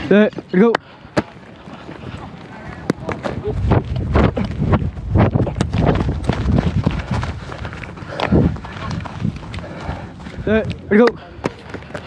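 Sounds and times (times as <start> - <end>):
running footsteps on grass: 1.0 - 12.0
wind rumble: 1.4 - 10.9.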